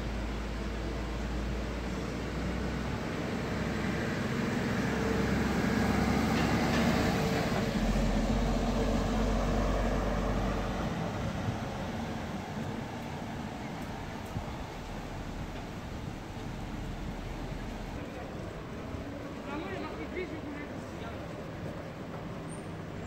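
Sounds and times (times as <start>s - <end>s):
traffic hum: 0.0s - 23.0s
car driving past: 3.3s - 11.4s.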